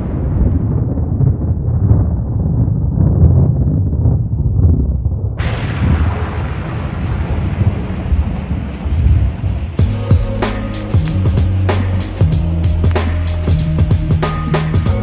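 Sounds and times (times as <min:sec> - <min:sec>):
deep uneven rumble: 0:00.0 - 0:15.0
bright hiss: 0:09.6 - 0:15.0
music beat: 0:09.8 - 0:15.0.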